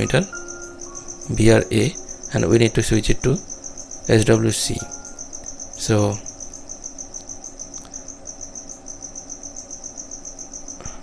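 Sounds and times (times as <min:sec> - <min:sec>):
cricket chirping: 0:00.0 - 0:11.0
faint low hum: 0:00.0 - 0:11.0.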